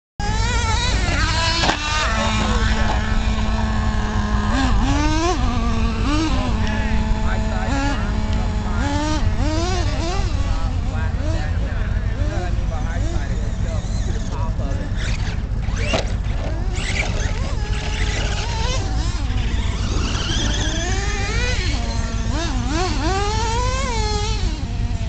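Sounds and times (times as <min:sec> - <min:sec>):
wind rumble on microphone: 0:00.2 - 0:22.7
electric motor whining: 0:00.2 - 0:25.0.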